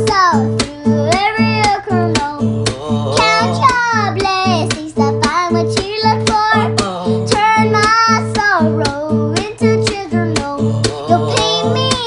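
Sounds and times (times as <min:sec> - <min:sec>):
girl singing sliding notes: 0:00.0 - 0:12.0
strummed acoustic guitar: 0:00.0 - 0:12.0.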